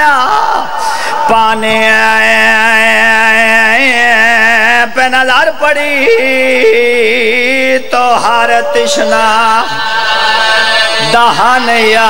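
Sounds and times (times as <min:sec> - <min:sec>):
man chanting lament: 0:00.0 - 0:12.0.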